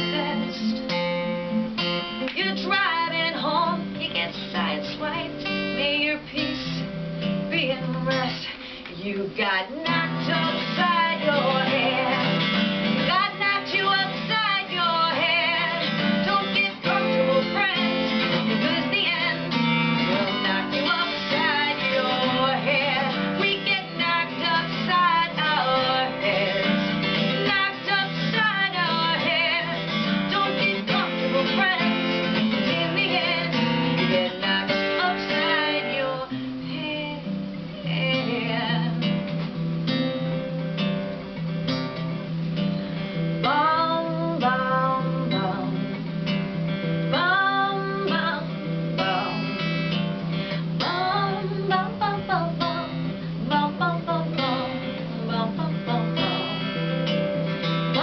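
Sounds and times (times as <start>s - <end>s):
person singing: 0.0s - 1.0s, 2.2s - 39.2s, 43.4s - 46.0s, 47.1s - 57.2s
acoustic guitar strumming: 0.0s - 58.0s.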